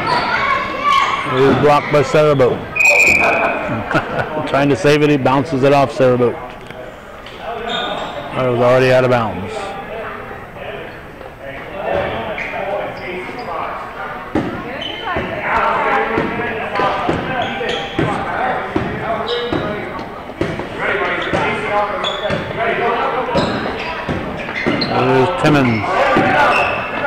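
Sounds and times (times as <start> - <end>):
voices echoing in hall: 0.0 - 27.0.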